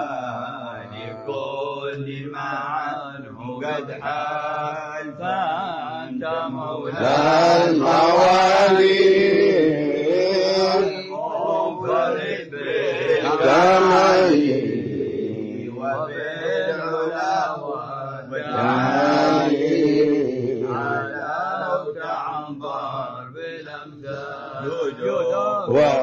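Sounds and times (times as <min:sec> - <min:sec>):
men chanting: 0:00.0 - 0:26.0.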